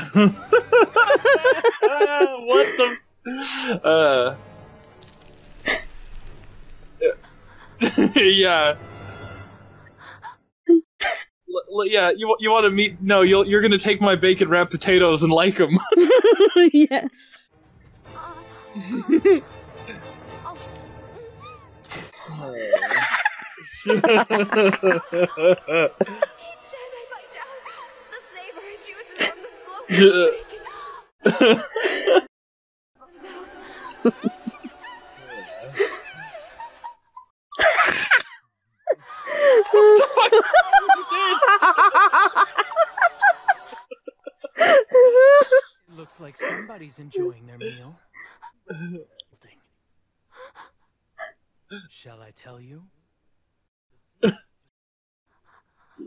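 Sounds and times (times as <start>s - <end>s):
laughter: 0.0s - 3.0s, 7.0s - 8.4s, 15.7s - 16.9s, 18.8s - 19.4s, 22.2s - 26.4s, 31.2s - 32.3s, 33.3s - 45.7s.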